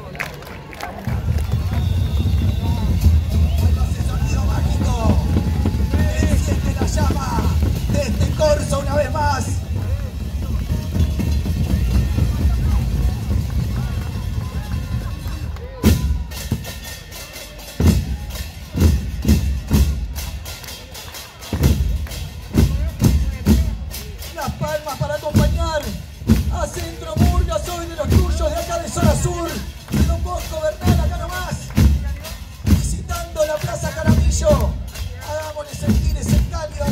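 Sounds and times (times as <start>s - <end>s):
voices over drumming: 1.0s - 36.9s
bass drums playing: 1.1s - 36.9s.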